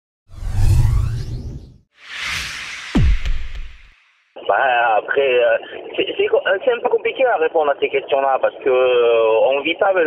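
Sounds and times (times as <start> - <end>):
whoosh: 0.3 - 4.3.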